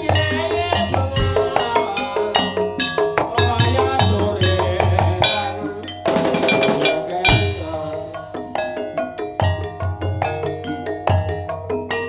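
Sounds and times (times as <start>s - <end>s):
sharp loud percussion strike: 0.0s - 3.8s, 5.0s - 10.5s
live ensemble music: 0.0s - 12.0s.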